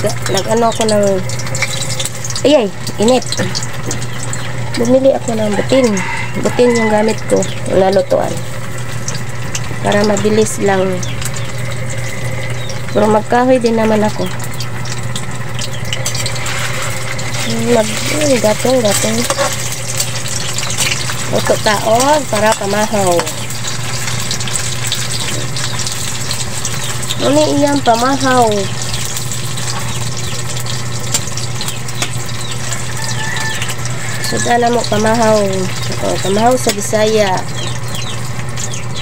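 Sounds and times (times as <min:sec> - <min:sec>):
hot dogs sizzling in oil: 0:00.0 - 0:39.0
low steady hum: 0:00.0 - 0:39.0.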